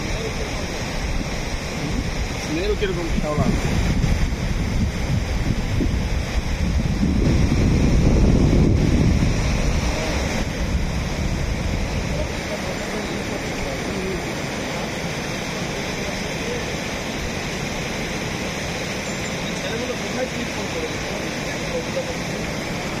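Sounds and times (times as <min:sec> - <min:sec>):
water rushing through weir: 0:00.0 - 0:23.0
wind buffeting microphone: 0:00.0 - 0:23.0.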